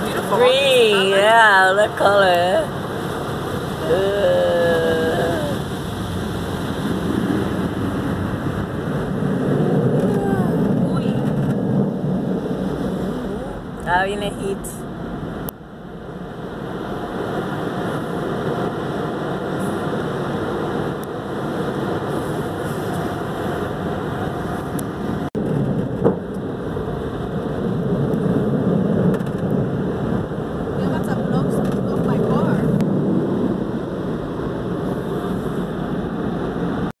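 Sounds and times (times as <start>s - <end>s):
car wash water spray and machinery: 0.0s - 10.0s, 11.5s - 36.9s.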